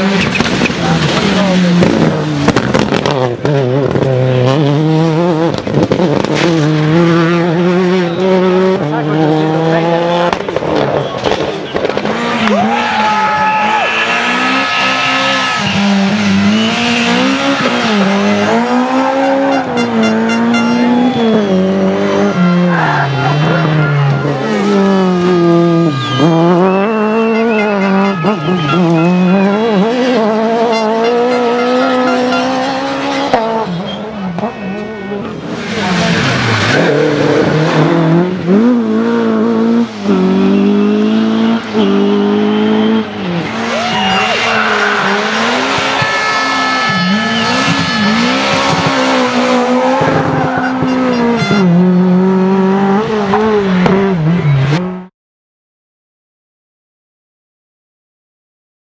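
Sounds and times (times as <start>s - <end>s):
rally car engines revving: 0.0s - 55.1s
tyre squeal: 41.7s - 51.7s.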